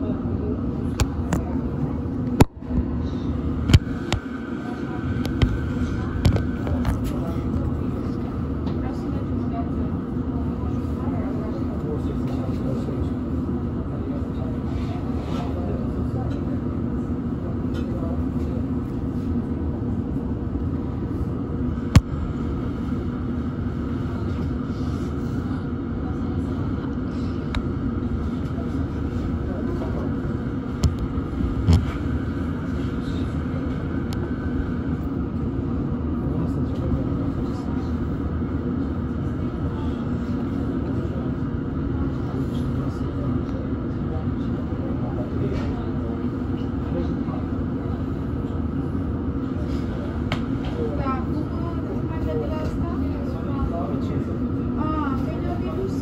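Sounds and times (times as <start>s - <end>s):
train carriage hum: 0.0s - 56.0s.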